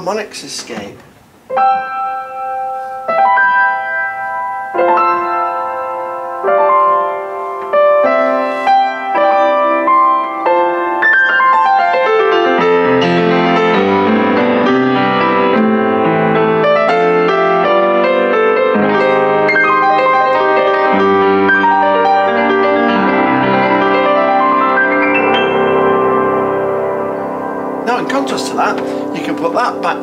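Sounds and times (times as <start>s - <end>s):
upright piano playing: 0.0s - 30.0s.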